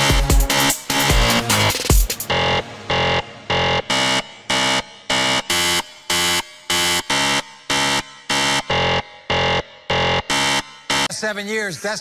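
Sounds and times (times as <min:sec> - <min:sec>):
buzzy timer beeps: 0:00.0 - 0:11.1.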